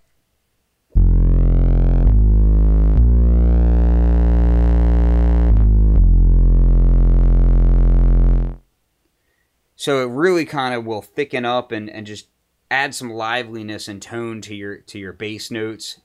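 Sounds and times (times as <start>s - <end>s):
distorted synth bass notes: 0.9s - 8.6s.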